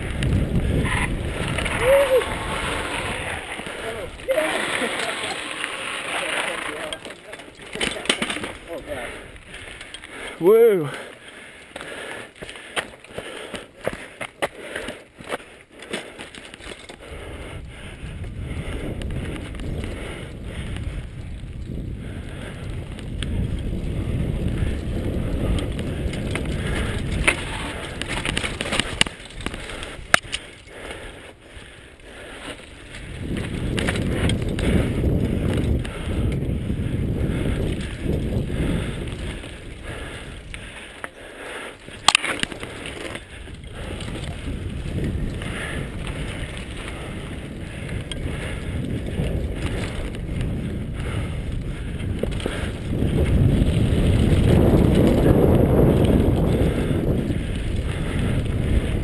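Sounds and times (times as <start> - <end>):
wind rumbling on microphone: 0.0 - 11.0, 16.0 - 59.0
bike rattling clicks: 0.0 - 59.0
bike tyres on dirt: 0.0 - 59.0
person shouting: 1.7 - 2.6, 3.8 - 4.9.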